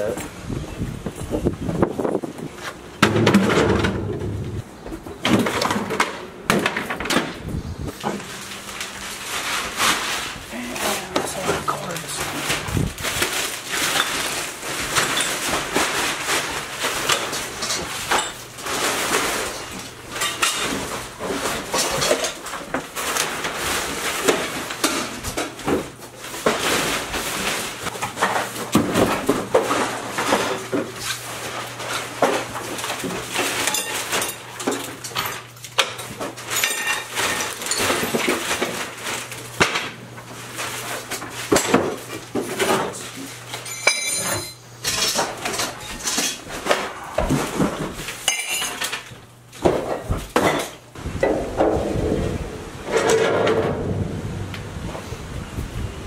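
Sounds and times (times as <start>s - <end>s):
clutter clattering: 1.1s - 54.0s
dishes and glassware clinking: 33.5s - 38.2s, 43.5s - 46.4s, 48.2s - 49.1s.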